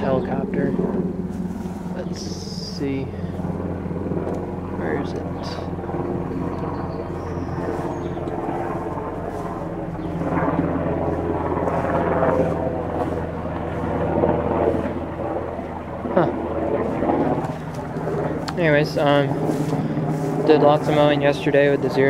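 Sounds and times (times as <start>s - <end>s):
helicopter droning hum: 0.0s - 22.0s.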